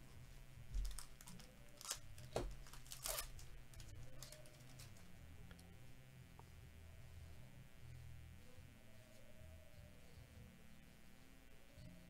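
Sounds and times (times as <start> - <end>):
wrapper tearing and crinkling: 0.8 - 5.0.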